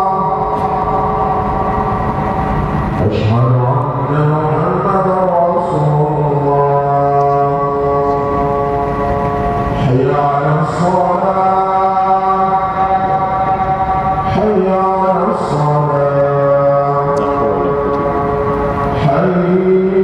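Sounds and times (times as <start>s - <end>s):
man chanting held notes: 3.0s - 9.0s, 14.2s - 20.0s.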